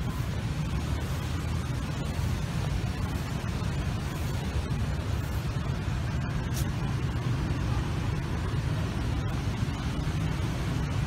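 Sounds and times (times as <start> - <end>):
low rumble of road traffic: 0.0 - 11.0.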